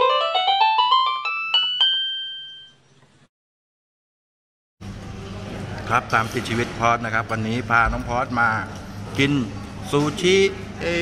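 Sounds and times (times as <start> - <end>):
bell-like keyboard note: 0.0 - 2.9.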